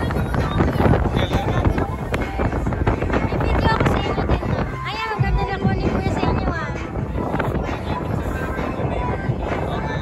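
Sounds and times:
rushing water: 0:00.0 - 0:10.0
wind buffeting microphone: 0:00.0 - 0:10.0.

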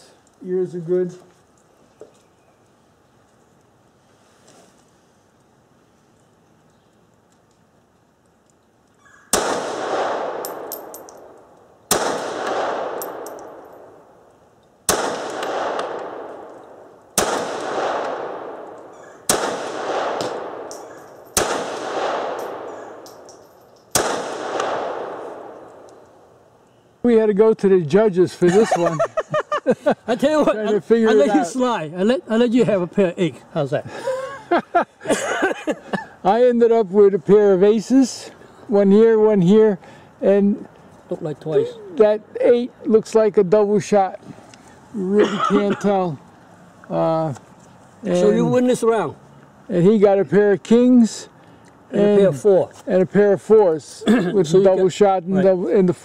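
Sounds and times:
pistol shots with echo: 0:09.3 - 0:14.1, 0:14.9 - 0:26.0.

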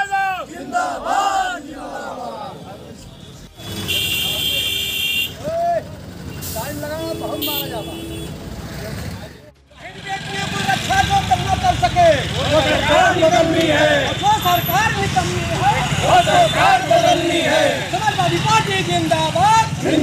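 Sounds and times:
men's voices: 0:00.0 - 0:03.4, 0:08.8 - 0:20.0
road traffic rumble: 0:00.0 - 0:20.0
vehicle horn: 0:03.2 - 0:05.4, 0:06.4 - 0:08.4, 0:15.7 - 0:18.2.

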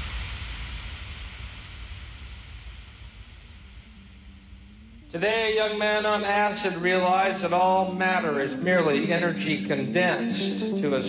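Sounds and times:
white noise wash over low rumble: 0:00.0 - 0:10.4
faint low drone: 0:00.0 - 0:11.0.

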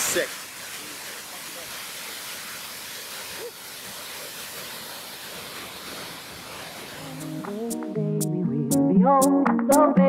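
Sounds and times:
water rushing over rapids: 0:00.0 - 0:07.8.

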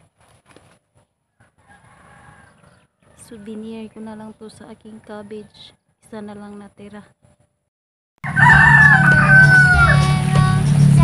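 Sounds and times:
rooster crowing: 0:01.3 - 0:03.3, 0:08.2 - 0:10.2
music: 0:08.8 - 0:11.0.

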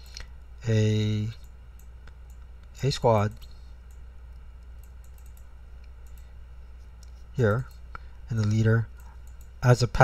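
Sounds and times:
steady low hum: 0:00.0 - 0:10.0
light computer clicks: 0:01.4 - 0:06.3, 0:06.9 - 0:09.6.

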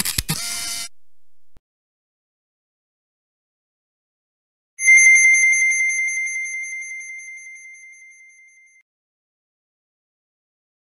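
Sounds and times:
high bell-like chime: 0:04.8 - 0:08.8.

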